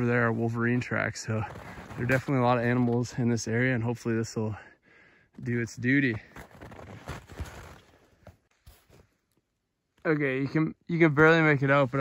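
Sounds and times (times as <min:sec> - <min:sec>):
footsteps crunching in snow: 0:06.1 - 0:09.1.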